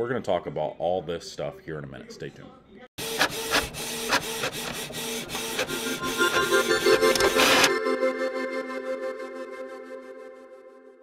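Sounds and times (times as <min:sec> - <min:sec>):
printer clicks: 0:03.1 - 0:07.7.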